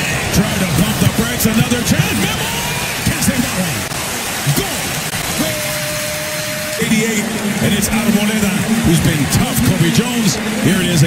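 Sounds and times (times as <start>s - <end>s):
players shouting: 0.0s - 11.0s
stadium background noise: 0.0s - 11.0s.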